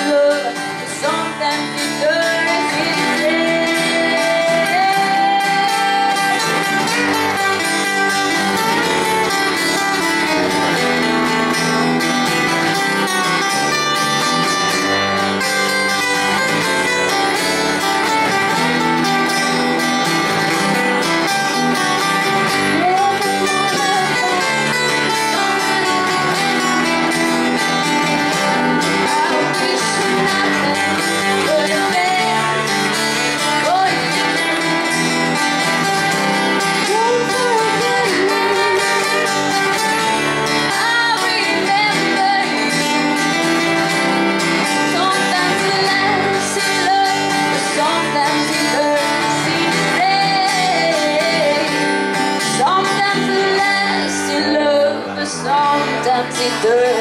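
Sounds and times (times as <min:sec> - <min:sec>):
strummed acoustic guitar: 0:00.0 - 0:57.0
woman singing: 0:00.0 - 0:57.0.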